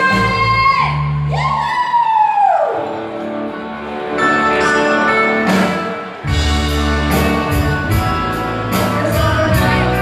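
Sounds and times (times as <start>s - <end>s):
sustained electric guitar chords: 2.9s - 10.0s.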